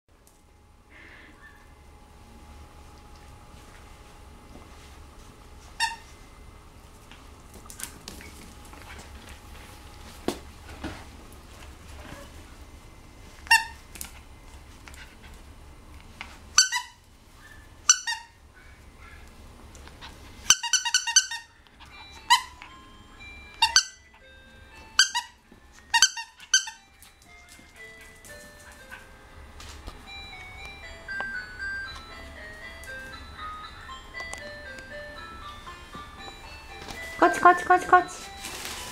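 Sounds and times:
squeaky dog toy squeak: 5.8s - 6.0s, 13.5s - 13.8s, 16.6s - 17.0s, 17.9s - 18.4s, 20.5s - 22.6s, 23.6s - 24.2s, 25.0s - 26.9s.

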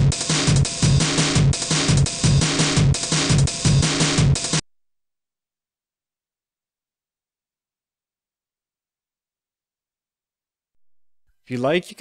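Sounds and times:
programmed breakbeat drums: 0.0s - 4.6s.

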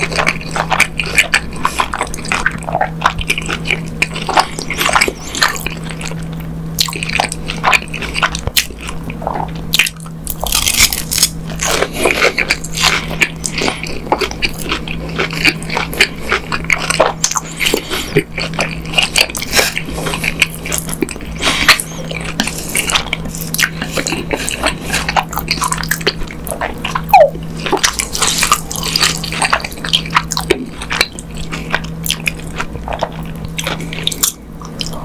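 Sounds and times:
crunchy close-miked chewing: 0.0s - 35.0s.

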